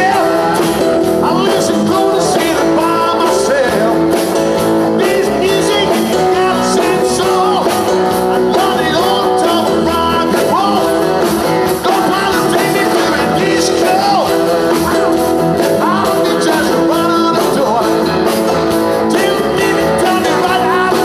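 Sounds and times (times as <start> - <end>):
acoustic and electric guitars: 0.0 - 21.0
drums: 0.0 - 21.0
keyboard: 0.0 - 21.0
male lead vocal: 0.0 - 21.0.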